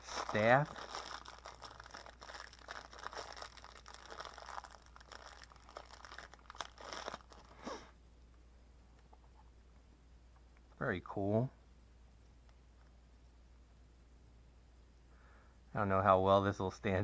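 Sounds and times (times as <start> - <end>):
plastic bag crinkling: 0.0 - 7.6.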